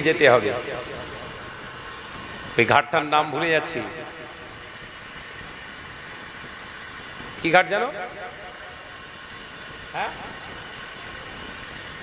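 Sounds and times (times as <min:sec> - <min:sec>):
man speaking into microphone: 0:00.0 - 0:01.2, 0:02.6 - 0:04.3, 0:07.4 - 0:08.5, 0:10.0 - 0:10.3
steady background hum: 0:00.0 - 0:12.0.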